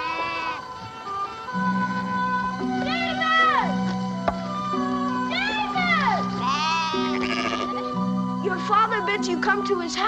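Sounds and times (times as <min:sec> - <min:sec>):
sheep bleating: 0:00.0 - 0:00.7, 0:06.3 - 0:08.0
background music of held notes: 0:00.0 - 0:10.0.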